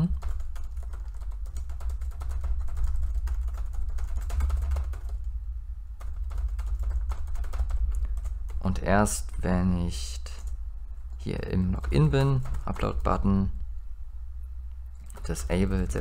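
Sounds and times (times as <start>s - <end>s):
typing on computer keyboard: 0.0s - 5.3s, 6.0s - 8.7s, 11.7s - 13.2s, 15.0s - 16.0s
steady low hum: 0.0s - 16.0s.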